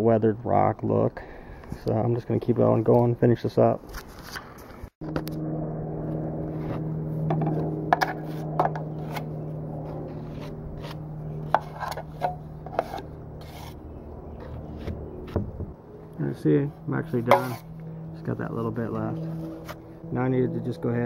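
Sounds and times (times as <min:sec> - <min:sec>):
steady low hum: 0:04.8 - 0:21.0
metal knife scraping metal pan: 0:10.3 - 0:13.8, 0:17.2 - 0:17.7.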